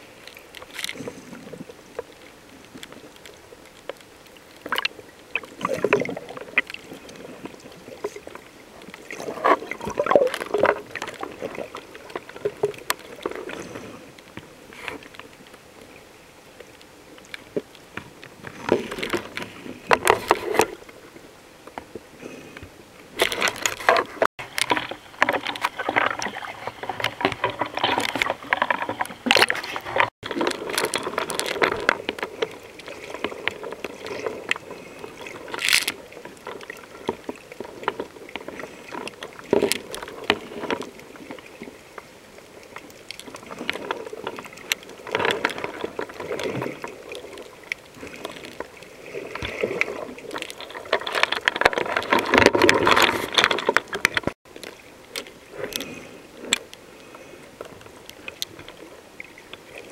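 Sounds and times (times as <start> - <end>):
underwater clicks and crackle: 0.0 - 59.9.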